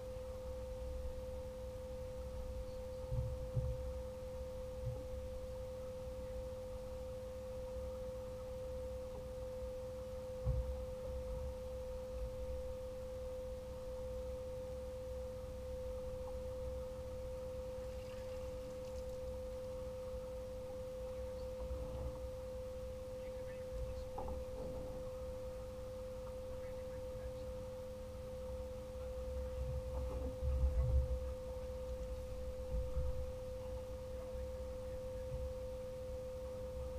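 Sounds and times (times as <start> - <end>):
steady single-pitched tone: 0.0 - 36.9
thump: 10.4 - 10.7
low rumble: 29.2 - 35.6.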